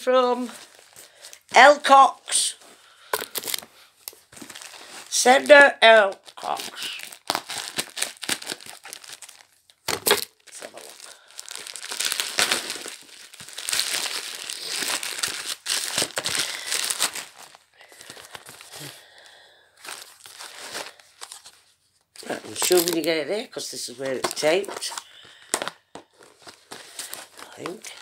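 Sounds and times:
packaging crinkling and rustling: 0.4s - 1.5s, 2.5s - 28.0s
packaging tearing: 3.1s - 5.1s, 6.2s - 19.0s, 19.8s - 21.6s, 22.2s - 23.1s, 24.1s - 28.0s
scissors cutting packaging: 3.2s - 3.6s, 7.0s - 10.3s.

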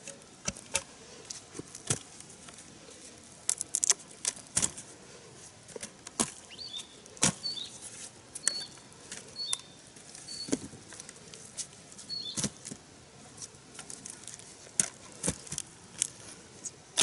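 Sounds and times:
rustling of roots and stalks: 0.0s - 17.0s
bird chirping: 6.4s - 10.6s, 12.0s - 12.6s
roots knocking into basket: 7.2s - 7.5s.

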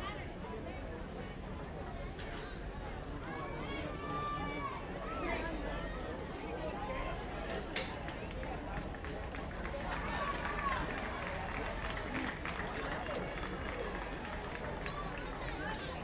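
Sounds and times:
people chattering and calling out: 0.0s - 16.0s.

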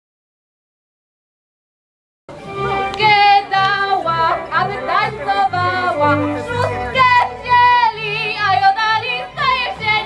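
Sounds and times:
pulsing bass accompaniment: 2.3s - 10.0s
singing with vibrato: 3.0s - 10.0s.

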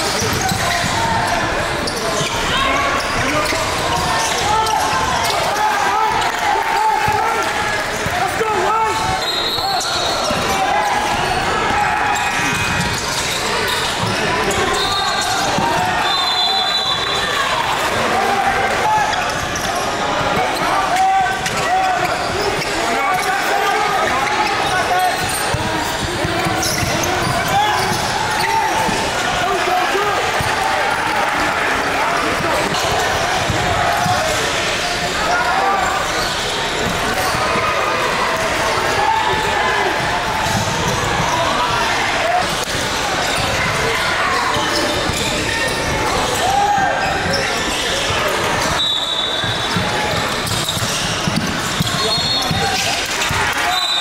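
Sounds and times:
players and spectators calling: 0.0s - 54.0s
basketball bouncing on court: 49.4s - 53.4s.

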